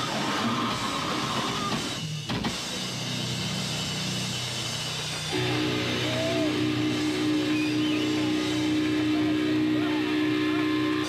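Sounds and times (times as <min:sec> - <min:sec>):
grindcore band playing: 0:00.0 - 0:11.0
guitar and bass notes ringing: 0:02.8 - 0:11.0
steady pitched tone: 0:05.3 - 0:11.0.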